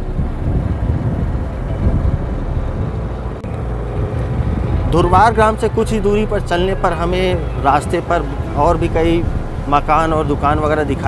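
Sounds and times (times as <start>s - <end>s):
motorcycle engine running: 0.0s - 11.0s
wind rush on microphone: 0.0s - 11.0s.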